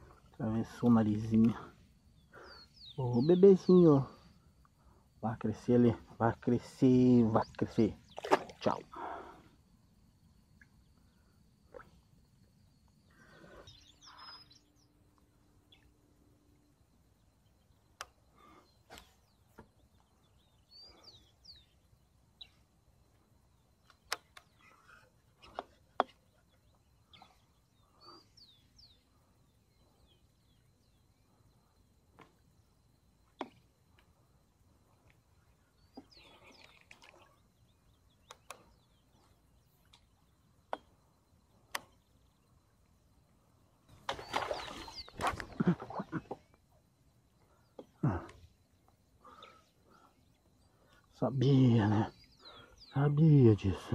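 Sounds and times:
bird chirps: 0.4s - 4.3s, 12.9s - 22.7s, 23.5s - 31.8s, 35.3s - 42.8s, 43.9s - 46.6s, 48.8s - 53.9s.

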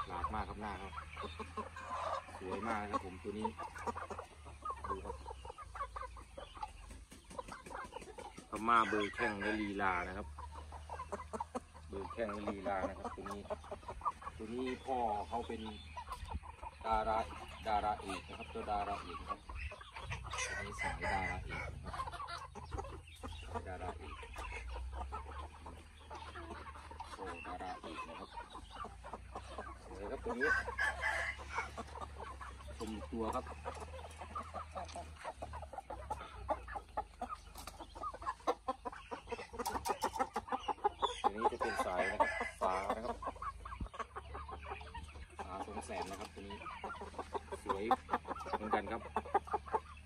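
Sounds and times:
chickens clucking: 0.0s - 50.0s
man speaking: 29.9s - 30.8s, 32.8s - 33.6s.

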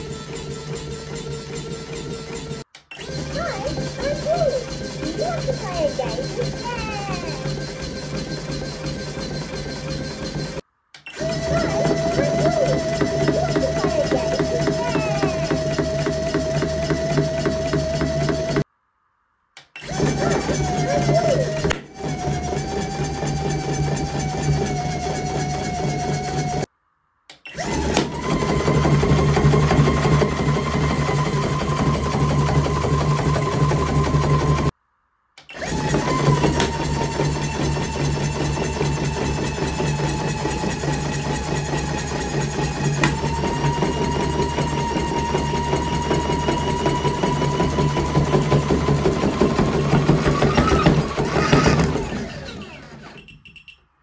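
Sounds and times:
toy gear motor whining: 0.0s - 18.7s, 19.6s - 26.7s, 35.4s - 53.7s.

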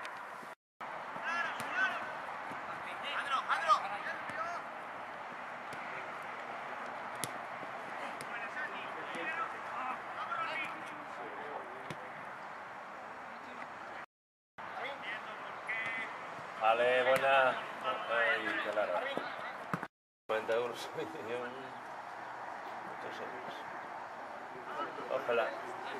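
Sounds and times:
open-air background noise: 0.0s - 25.9s
distant players shouting: 0.9s - 11.2s, 14.6s - 19.7s.

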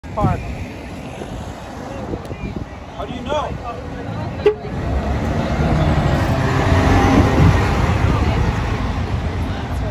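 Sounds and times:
diesel coach engine pulling away: 3.8s - 9.8s.

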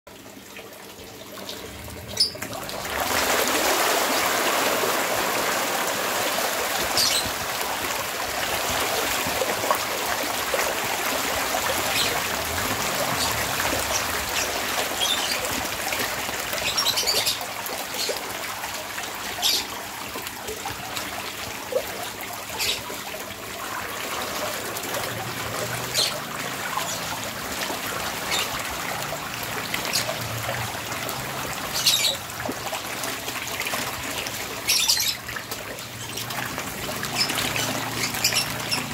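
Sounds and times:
fish splashing and sloshing: 0.1s - 38.9s
water trickling: 0.1s - 38.9s.

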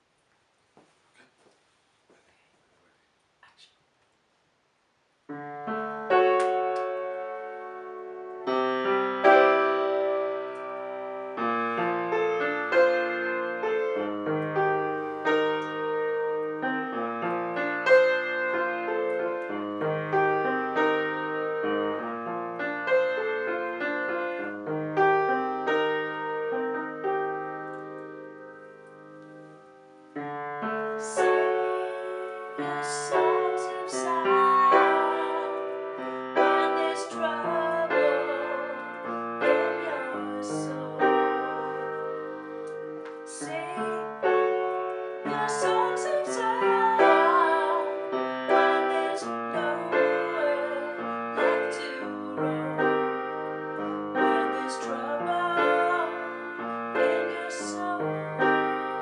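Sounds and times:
piano chords: 5.3s - 59.0s.

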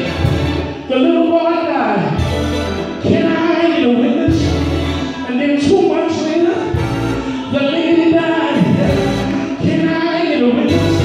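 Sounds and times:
man singing gospel into microphone: 0.0s - 11.0s.

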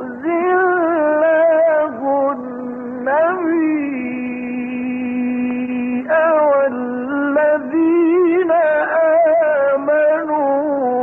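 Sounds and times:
man reciting in long sung note: 0.0s - 11.0s.

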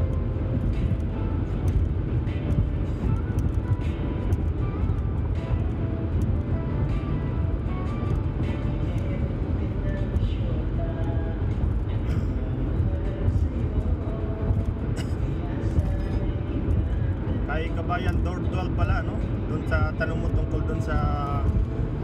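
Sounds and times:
car road and engine rumble: 0.0s - 22.0s
music with singing voice: 0.0s - 22.0s.

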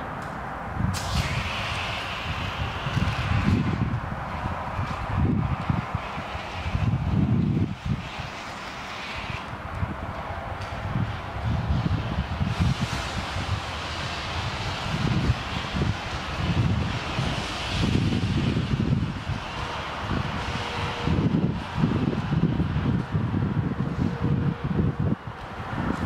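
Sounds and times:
wind rumble on microphone: 0.0s - 26.0s.

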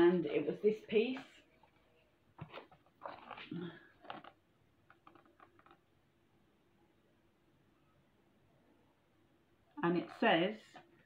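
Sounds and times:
book pages turning: 2.4s - 5.8s.

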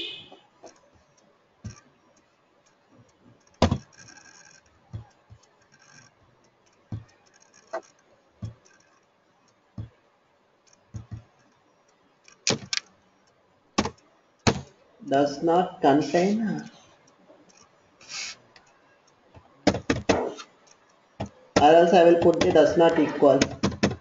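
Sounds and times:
keyboard and mouse clicks: 2.7s - 10.0s, 10.6s - 13.0s, 19.4s - 24.0s.

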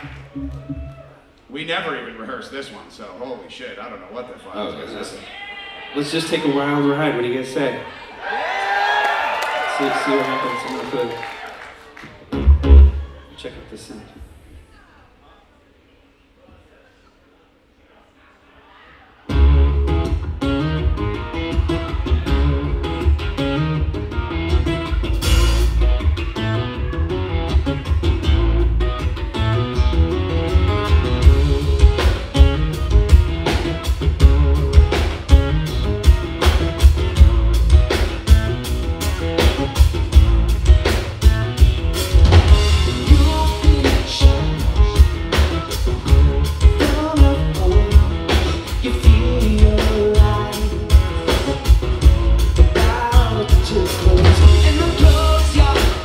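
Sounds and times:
acoustic-electric guitar: 12.0s - 13.2s, 19.3s - 56.0s
drum kit: 12.3s - 13.1s, 19.3s - 56.0s
man singing: 42.9s - 45.2s, 46.0s - 51.6s, 52.6s - 56.0s.

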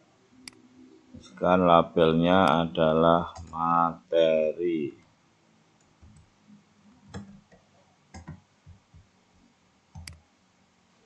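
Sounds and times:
computer keyboard and mouse clicks: 7.1s - 8.8s, 10.0s - 10.2s.

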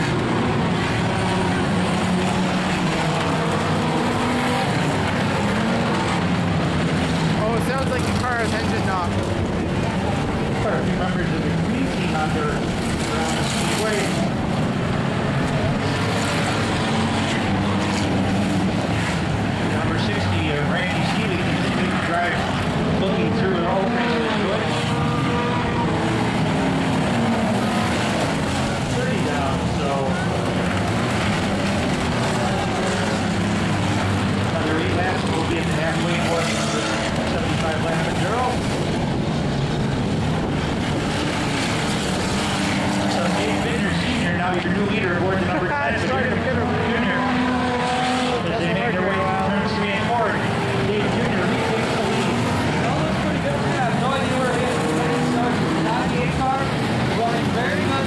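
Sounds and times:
spectators' voices: 0.0s - 38.9s
race car engines passing: 0.0s - 58.0s.

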